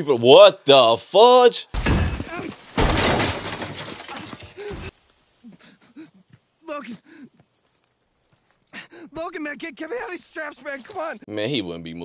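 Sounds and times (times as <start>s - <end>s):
crashing through tree branches: 1.8s - 5.0s.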